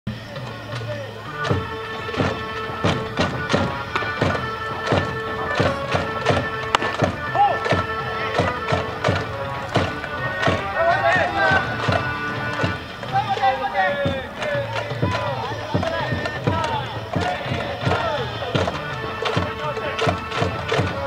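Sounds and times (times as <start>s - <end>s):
drum beats: 0.1s - 21.0s
held horn notes: 0.1s - 21.0s
crowd singing along: 0.2s - 21.0s.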